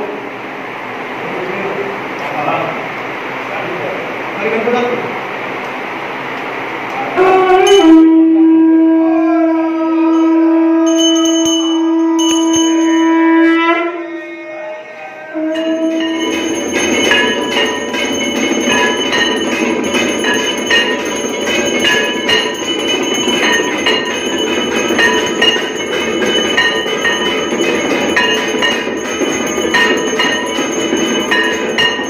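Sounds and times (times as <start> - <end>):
temple bells clanging: 10.0 - 13.6, 15.4 - 32.0.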